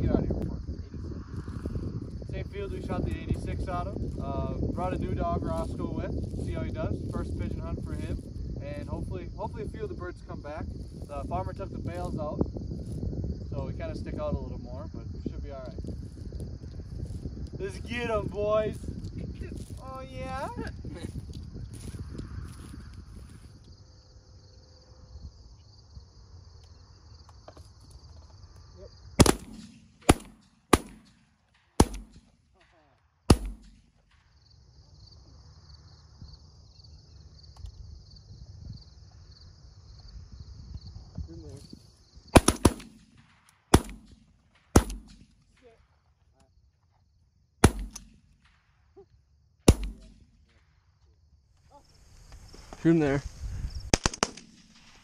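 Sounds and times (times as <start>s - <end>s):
shotguns firing: 29.2s - 32.4s, 33.3s - 33.9s, 42.3s - 45.3s, 47.6s - 48.6s, 49.7s - 50.2s, 53.9s - 55.0s.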